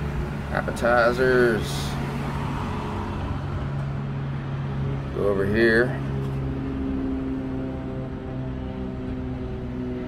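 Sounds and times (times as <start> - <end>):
street noise: 0.0 - 10.0.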